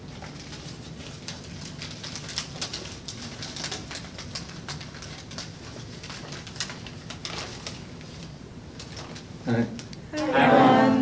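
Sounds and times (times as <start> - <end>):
paper rustling and crinkling: 0.0 - 9.3
low room hum: 0.0 - 11.0.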